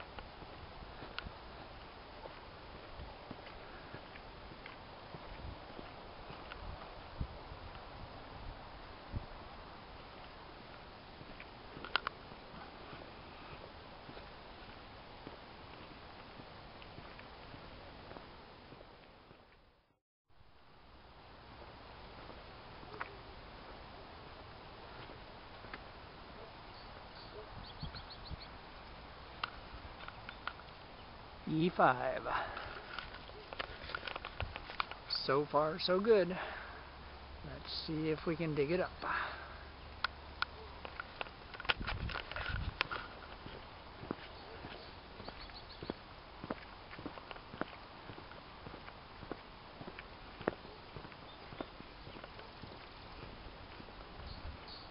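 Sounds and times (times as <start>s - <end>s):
steady outdoor hiss: 0.0s - 54.9s
footsteps crunching on gravel: 0.2s - 7.0s, 10.1s - 19.7s, 24.8s - 26.0s, 31.6s - 35.1s, 41.0s - 54.9s.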